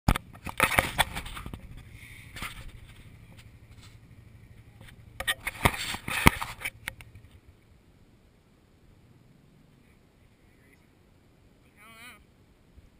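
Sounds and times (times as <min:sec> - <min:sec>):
camera handled in grass: 0:00.1 - 0:07.4.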